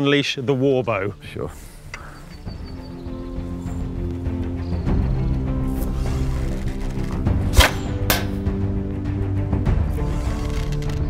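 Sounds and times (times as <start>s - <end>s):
background music with held notes: 0.0s - 11.0s
arrows cracking from bow: 5.5s - 8.5s, 9.9s - 11.0s.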